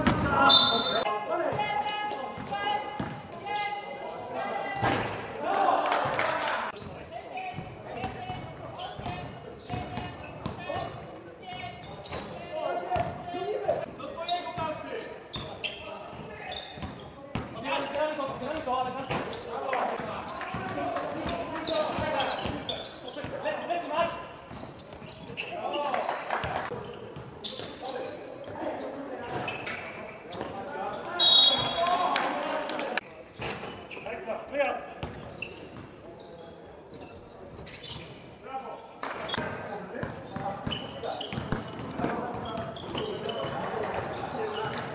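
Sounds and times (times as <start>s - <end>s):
shoe squeak: 0.4s - 1.1s, 6.8s - 7.7s, 8.3s - 12.6s, 13.8s - 17.2s, 18.4s - 19.6s, 20.3s - 23.4s, 24.4s - 26.1s, 26.8s - 31.8s, 33.1s - 44.9s
basketball bouncing on court: 2.4s - 3.2s, 13.0s - 13.2s, 16.8s - 17.6s, 40.0s - 44.0s.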